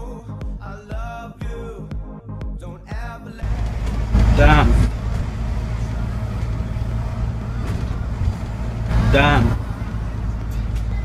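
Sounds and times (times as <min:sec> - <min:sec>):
bus engine rumble and road noise: 0:03.4 - 0:11.0.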